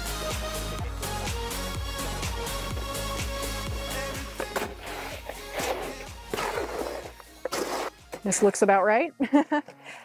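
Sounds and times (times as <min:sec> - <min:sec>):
background music with steady beat: 0:00.0 - 0:10.0
hoe scraping wet concrete: 0:04.4 - 0:08.5.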